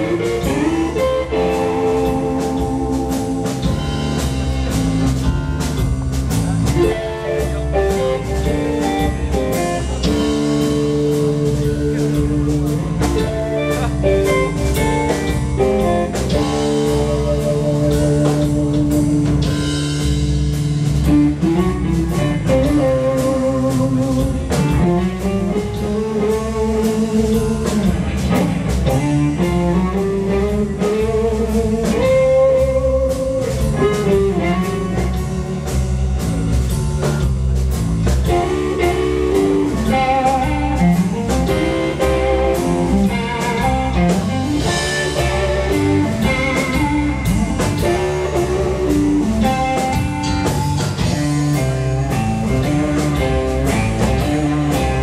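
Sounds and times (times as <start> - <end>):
electric guitar bending notes: 0.0 - 36.9, 37.9 - 55.0
bass guitar: 0.0 - 55.0
drum kit: 0.0 - 55.0.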